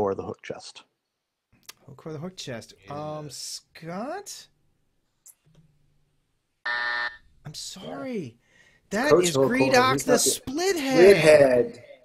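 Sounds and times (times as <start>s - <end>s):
wrong-answer buzzer: 6.7s - 7.2s.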